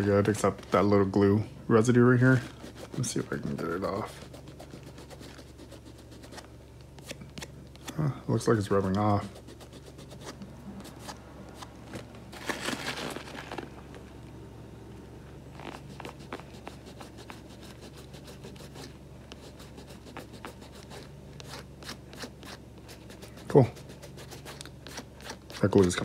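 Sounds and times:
thumb rubbing leather: 2.3 - 7.2, 15.5 - 26.0.

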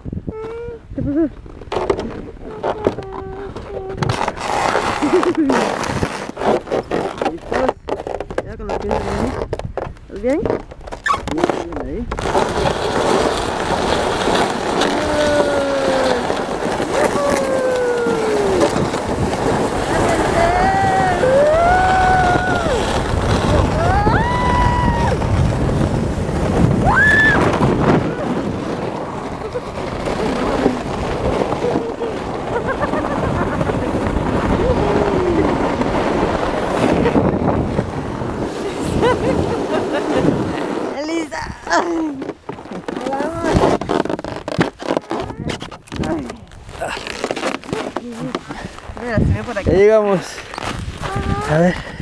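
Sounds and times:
sled scraping down snow: 0.3 - 52.0
riders whooping and squealing: 20.0 - 25.3, 26.8 - 28.4.

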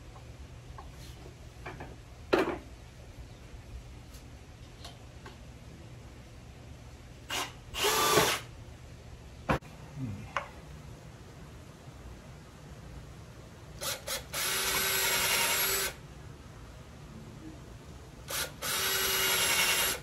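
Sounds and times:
cordless drill driving screw: 7.3 - 8.5, 13.8 - 16.0, 18.3 - 20.0.

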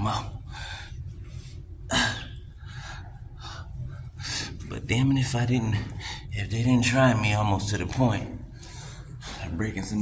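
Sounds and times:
faint breaths: 0.4 - 4.7, 8.4 - 9.6.

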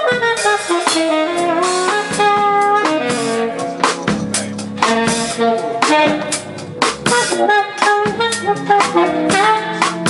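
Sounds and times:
jazz funk band playing: 0.0 - 10.0
tenor saxophone melody: 0.0 - 10.0.

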